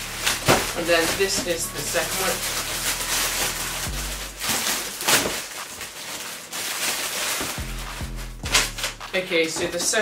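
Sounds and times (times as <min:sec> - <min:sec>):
background music with bass line: 0:00.0 - 0:05.0, 0:07.5 - 0:09.4
plastic bag crinkling: 0:00.0 - 0:10.0.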